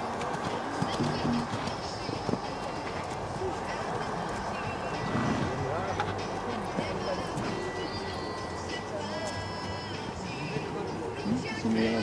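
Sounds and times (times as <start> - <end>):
horse hoofbeats on sand: 0.0 - 7.8
spectators talking: 0.0 - 12.0.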